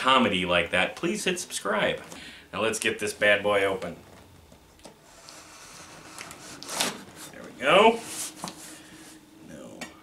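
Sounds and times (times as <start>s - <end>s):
knife scraping through tape and cardboard: 5.0s - 7.3s.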